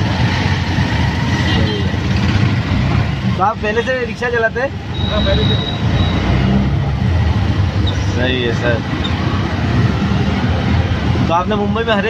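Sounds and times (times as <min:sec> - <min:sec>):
auto-rickshaw engine droning: 0:00.0 - 0:12.0
city traffic: 0:00.0 - 0:12.0.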